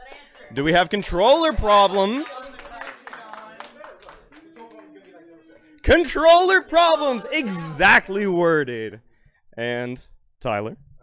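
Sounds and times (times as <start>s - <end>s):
people clapping: 0.0s - 8.2s.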